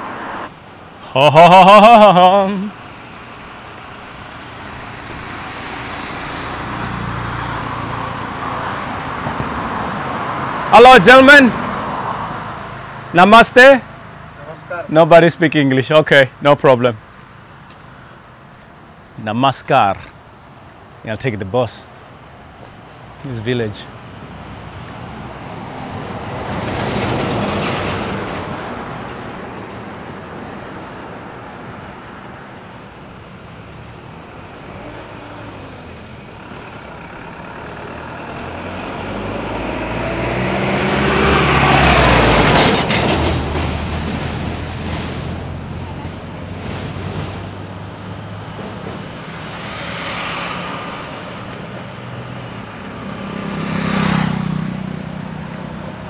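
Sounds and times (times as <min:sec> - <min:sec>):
heavy diesel vehicle passing: 0:00.0 - 0:18.5, 0:23.0 - 0:56.0
lighter vehicles passing: 0:00.0 - 0:56.0.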